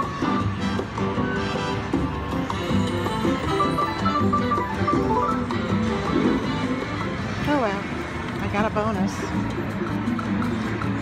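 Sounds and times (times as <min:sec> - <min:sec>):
slot machine electronic win tune: 0:03.1 - 0:06.2.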